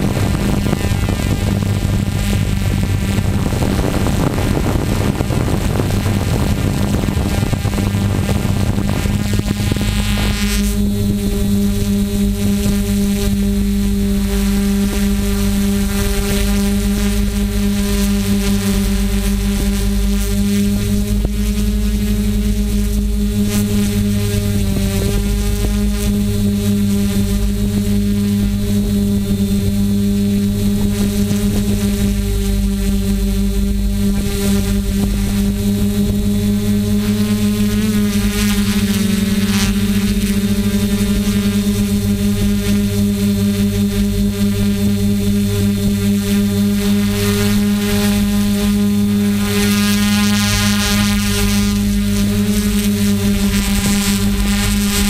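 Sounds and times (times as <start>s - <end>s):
drone propellers humming: 0.0s - 55.0s.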